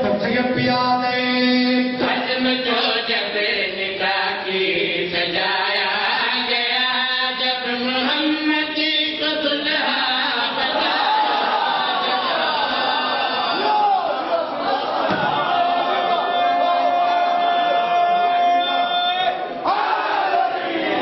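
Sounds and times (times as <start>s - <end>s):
man chanting religious recitation: 0.0s - 10.9s.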